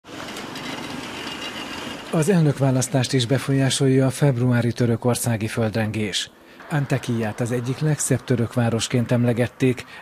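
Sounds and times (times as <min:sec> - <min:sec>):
cars driving past: 0:00.1 - 0:02.7, 0:06.4 - 0:10.0.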